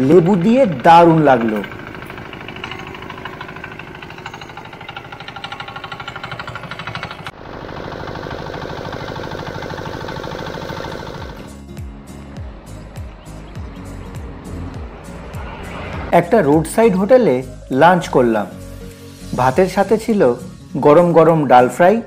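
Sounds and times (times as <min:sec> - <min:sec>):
small engine chugging: 0:00.0 - 0:11.5.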